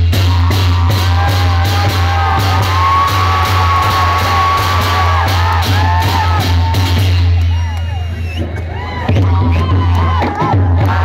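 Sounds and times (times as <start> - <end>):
drums and hand cymbals: 0.0 - 11.0
people shouting and whooping: 0.4 - 11.0.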